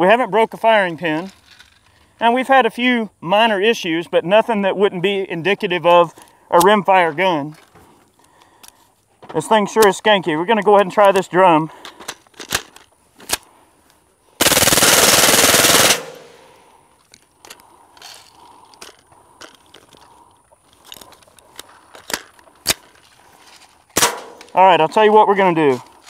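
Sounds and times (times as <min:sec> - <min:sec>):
suppressed rifle full-auto burst: 0:14.4 - 0:16.7.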